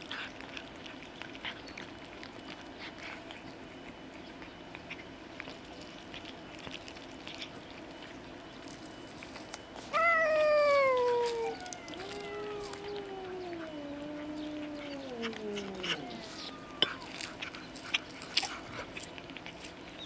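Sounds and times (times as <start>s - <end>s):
chewing clicks: 0.0s - 20.0s
cat meowing: 9.9s - 17.4s.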